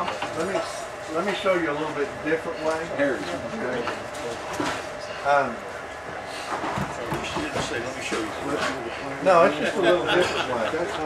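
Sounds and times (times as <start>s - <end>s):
men talking indistinctly: 0.0s - 11.0s.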